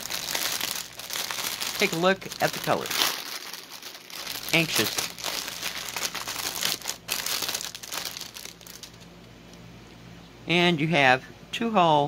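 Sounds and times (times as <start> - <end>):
plastic bag crinkling: 0.0 - 9.1.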